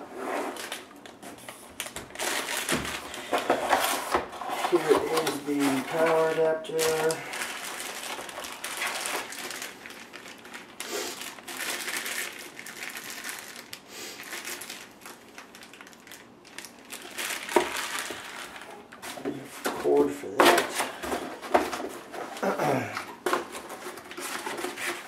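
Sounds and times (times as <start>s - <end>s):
cardboard packaging rustling: 0.2s - 25.0s
plastic bag crinkling: 0.6s - 25.0s.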